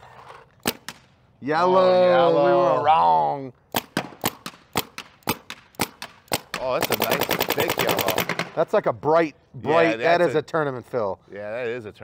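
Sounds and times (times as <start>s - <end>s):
paintball marker shots: 0.6s - 1.2s, 3.7s - 8.6s.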